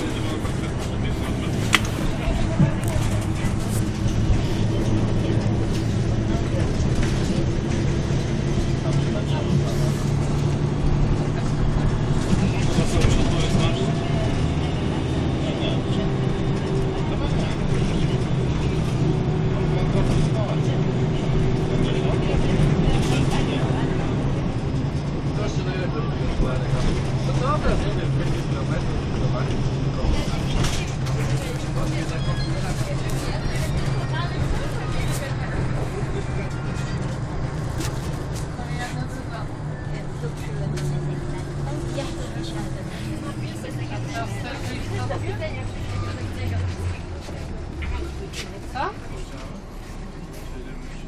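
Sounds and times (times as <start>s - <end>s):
bus engine droning: 0.0s - 51.0s.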